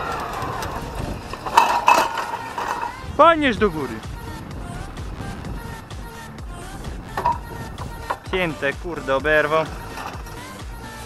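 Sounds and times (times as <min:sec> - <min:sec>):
plough clanking and scraping in soil: 0:00.0 - 0:03.0, 0:09.4 - 0:10.6.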